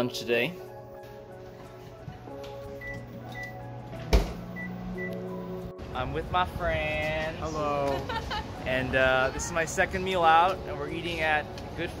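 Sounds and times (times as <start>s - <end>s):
background music: 0.0s - 12.0s
microwave humming: 2.4s - 5.7s
microwave keypad beeps: 2.8s - 3.7s, 4.5s - 5.3s.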